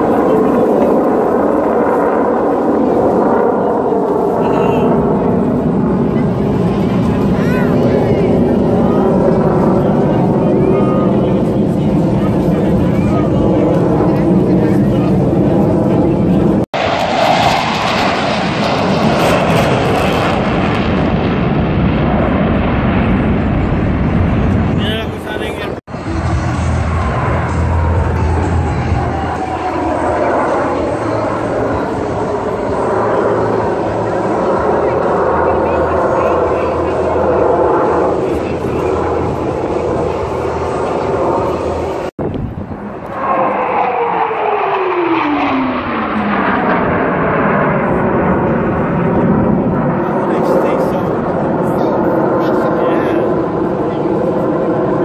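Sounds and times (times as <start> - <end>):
military jets flying over: 0.0 - 55.0.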